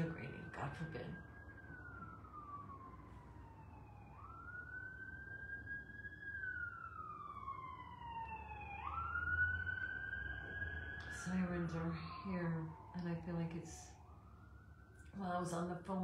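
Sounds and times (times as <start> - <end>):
emergency siren wailing: 0.0 - 16.0.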